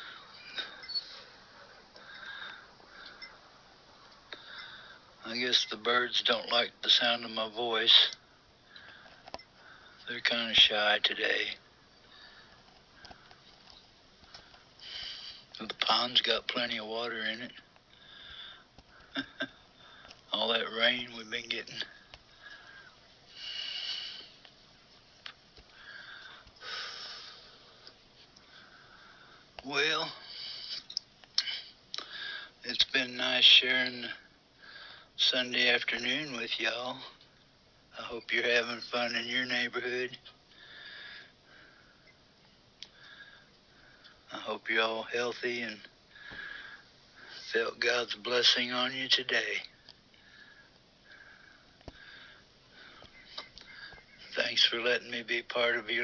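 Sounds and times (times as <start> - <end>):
breaths close to microphone: 0.0 - 5.2, 8.4 - 10.1, 12.0 - 15.6, 17.8 - 20.3, 21.8 - 24.5, 25.6 - 32.6, 34.2 - 35.2, 40.5 - 42.1, 42.8 - 44.3, 46.0 - 47.6, 50.1 - 54.3.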